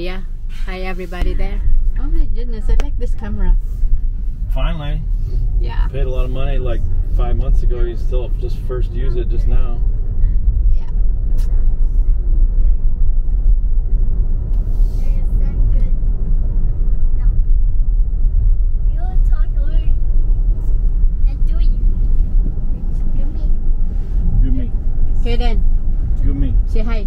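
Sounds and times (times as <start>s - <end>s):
car road noise rumble: 0.0s - 27.0s.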